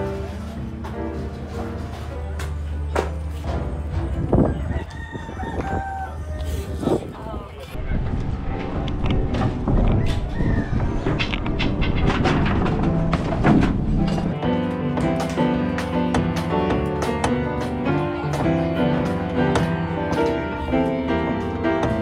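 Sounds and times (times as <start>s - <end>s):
background music: 0.0s - 6.2s, 7.8s - 22.0s
rooster crowing: 4.4s - 6.8s, 10.0s - 11.0s
junk clattering into metal dumpster: 11.1s - 17.8s.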